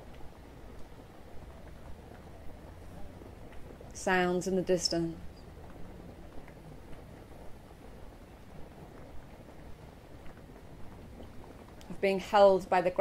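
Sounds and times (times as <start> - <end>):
faint steady rain: 0.0 - 13.0.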